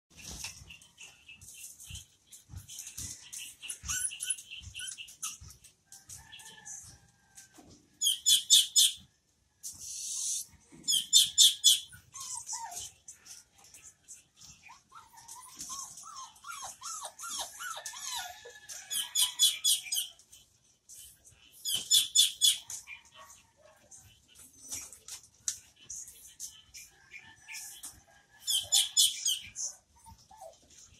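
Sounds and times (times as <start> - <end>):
dogs whining: 0.2 - 5.7, 10.7 - 20.2, 27.5 - 30.9.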